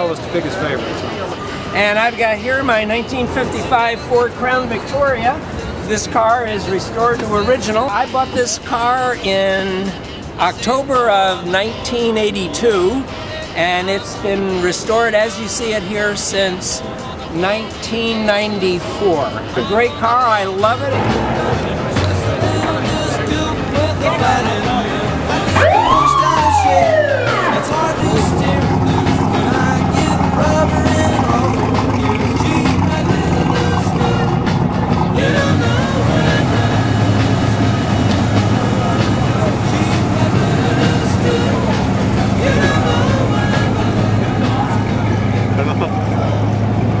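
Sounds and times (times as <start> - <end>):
background music: 0.0 - 47.0
faint voices: 0.0 - 47.0
slow-moving cars rumbling: 0.0 - 47.0
street noise: 0.0 - 47.0
siren-like whoop: 25.6 - 27.8.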